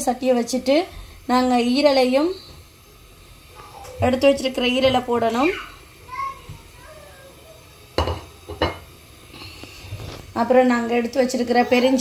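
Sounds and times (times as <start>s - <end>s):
kitchenware clattering knocks: 8.0s - 8.9s.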